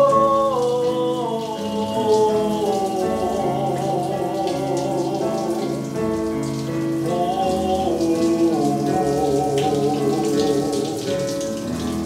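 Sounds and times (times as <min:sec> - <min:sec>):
man singing held notes with vibrato: 0:00.0 - 0:06.0, 0:07.0 - 0:11.4
musical accompaniment: 0:00.0 - 0:12.0
shower spraying: 0:00.0 - 0:12.0.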